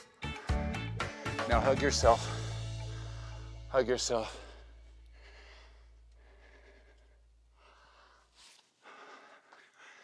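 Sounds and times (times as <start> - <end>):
low hum: 2.2 - 7.4
man breathing into microphone: 2.3 - 10.0.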